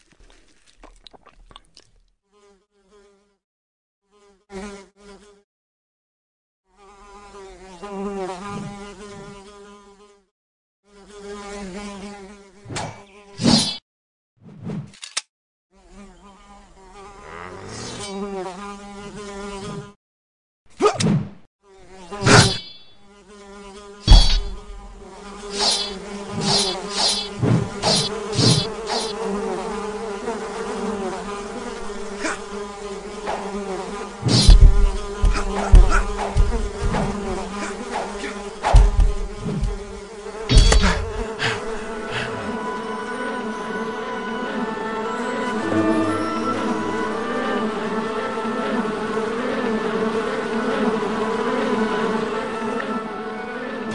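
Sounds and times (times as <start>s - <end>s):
housefly buzzing: 2.3s - 3.4s, 4.0s - 5.5s, 6.7s - 13.8s, 15.7s - 20.0s, 21.6s - 53.9s
sword swishes and strikes: 22.2s - 22.9s, 24.1s - 24.6s, 40.5s - 41.1s.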